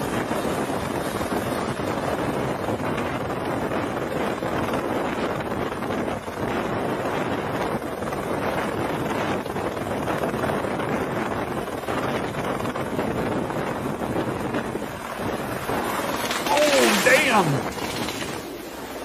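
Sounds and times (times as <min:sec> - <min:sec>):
helicopter hovering: 0:00.0 - 0:19.0
rotor downwash wind noise: 0:00.0 - 0:19.0.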